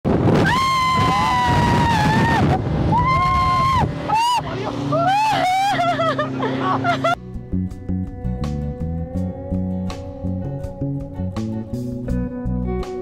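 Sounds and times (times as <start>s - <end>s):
wind: 0.0s - 13.0s
person whooping excitedly: 0.4s - 6.2s
outboard motor rushing: 0.8s - 7.2s.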